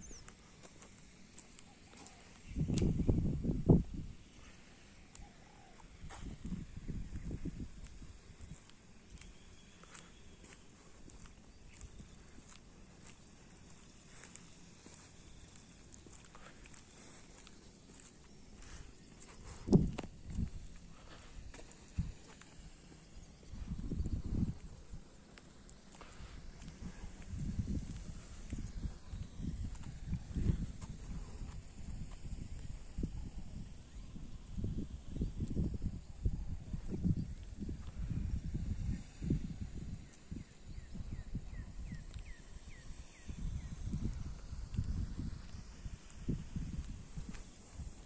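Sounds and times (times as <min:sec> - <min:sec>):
wind buffeting microphone: 0:02.4 - 0:04.2, 0:05.9 - 0:09.2, 0:18.6 - 0:25.1, 0:26.0 - 0:48.0.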